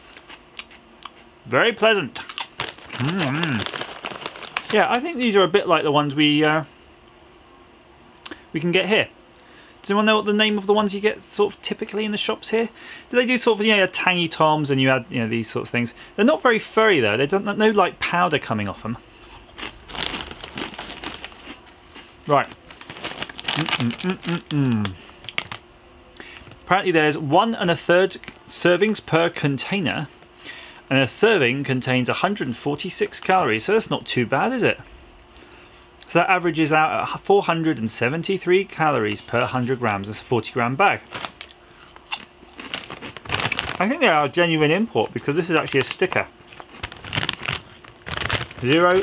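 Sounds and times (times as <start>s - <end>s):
crisps crunching while chewed: 0.0s - 1.3s, 2.1s - 5.3s, 19.2s - 25.7s, 41.0s - 44.4s, 45.0s - 49.0s
plastic snack bag crinkling: 2.2s - 5.4s, 19.2s - 25.7s, 41.0s - 49.0s.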